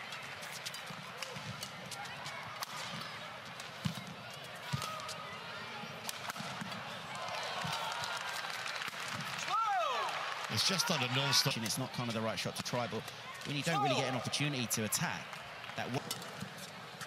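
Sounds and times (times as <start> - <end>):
arena crowd noise: 0.0 - 17.0.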